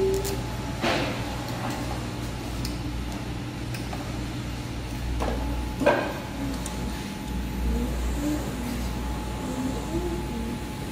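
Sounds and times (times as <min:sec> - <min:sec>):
tape winding machine humming: 0:00.0 - 0:10.9.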